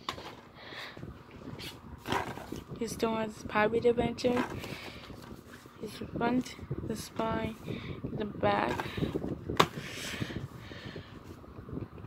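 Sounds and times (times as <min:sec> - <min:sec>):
plastic cases clacking and rustling: 0:00.0 - 0:00.5, 0:02.0 - 0:02.7, 0:04.3 - 0:05.6, 0:08.7 - 0:09.8.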